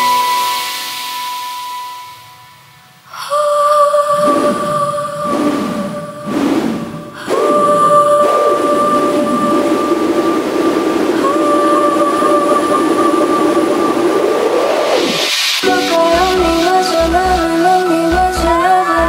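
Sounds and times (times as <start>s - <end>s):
swept hiss: 0.0s - 19.0s
held synth tone: 4.1s - 18.0s.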